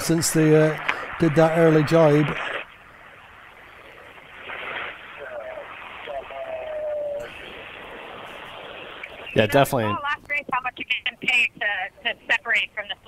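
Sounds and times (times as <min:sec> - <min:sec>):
steady hiss: 0:00.0 - 0:13.0
faint muffled voice: 0:05.2 - 0:07.4.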